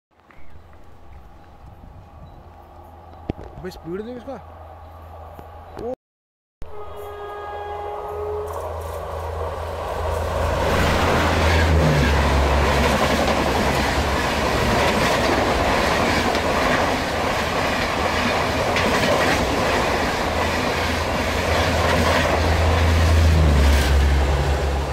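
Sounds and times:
locomotive horn: 6.6 - 10.2
train wheels rumbling on rails: 8.5 - 24.9.

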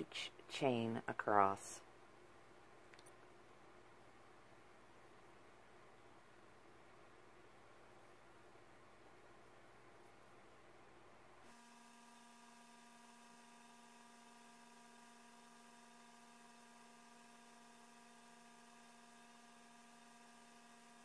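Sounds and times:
faint electrical hum: 0.0 - 21.0.

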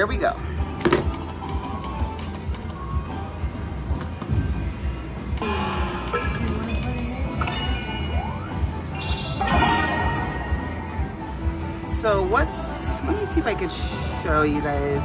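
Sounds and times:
slot machine game music: 4.6 - 15.0.

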